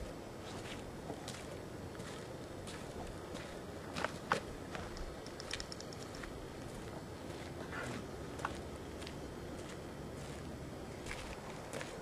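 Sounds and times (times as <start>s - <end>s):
footsteps on dry grass: 6.6s - 12.0s.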